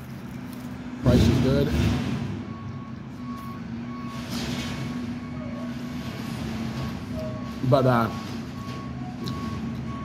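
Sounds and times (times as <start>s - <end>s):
engine humming: 0.0s - 10.0s
vehicle reversing alarm beeping: 1.0s - 10.0s.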